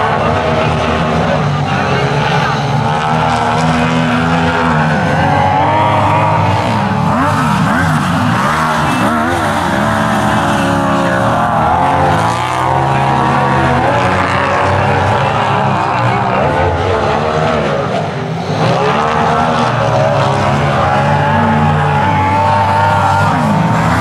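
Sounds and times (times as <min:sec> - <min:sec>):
racing engines revving: 0:00.0 - 0:24.0.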